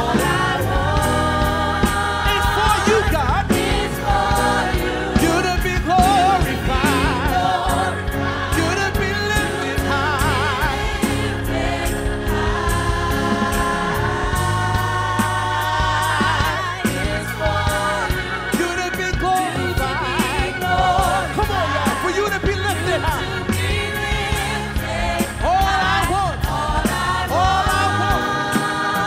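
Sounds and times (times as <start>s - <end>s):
band with steady beat and bass: 0.0s - 29.0s
choir singing: 0.0s - 29.0s
lead voice singing with vibrato: 0.0s - 29.0s.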